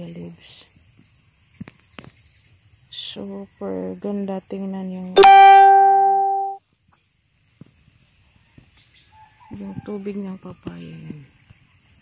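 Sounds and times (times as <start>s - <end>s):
plucked string note: 5.2s - 6.6s.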